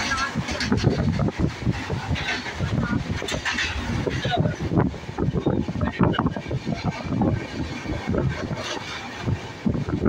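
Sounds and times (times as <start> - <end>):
people's voices: 0.0 - 1.1, 1.9 - 8.8
freight train wheels rumbling: 0.0 - 10.0.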